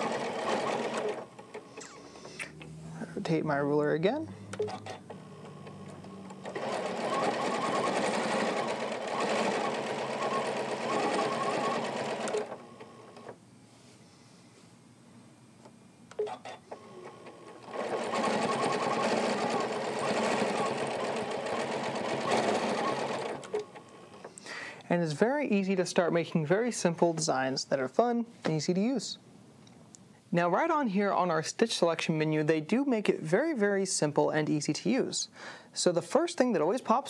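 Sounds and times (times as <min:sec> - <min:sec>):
sewing machine stitching: 0:00.0 - 0:02.2, 0:04.5 - 0:13.3, 0:16.2 - 0:24.2.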